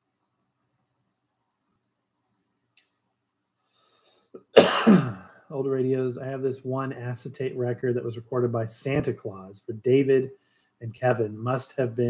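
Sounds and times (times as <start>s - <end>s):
man coughing: 4.4s - 5.4s.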